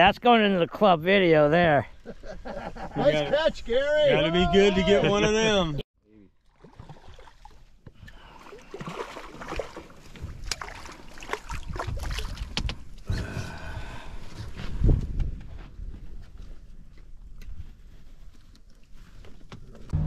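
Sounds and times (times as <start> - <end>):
fish splashing and thrashing: 6.4 - 13.1.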